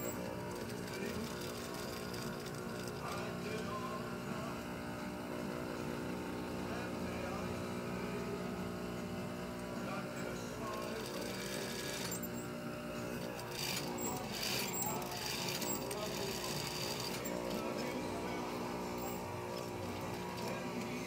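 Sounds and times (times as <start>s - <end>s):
sewing machine motor humming: 0.0s - 21.0s.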